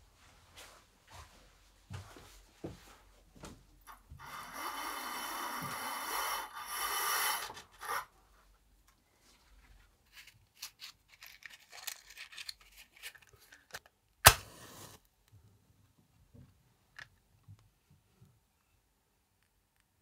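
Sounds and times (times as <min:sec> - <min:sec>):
match striking and flaring: 0:14.2 - 0:15.0.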